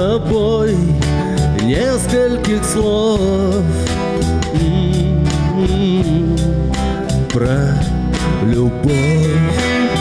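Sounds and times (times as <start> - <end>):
bass: 0.0 - 10.0
man singing: 0.0 - 10.0
strummed acoustic guitar: 0.0 - 10.0.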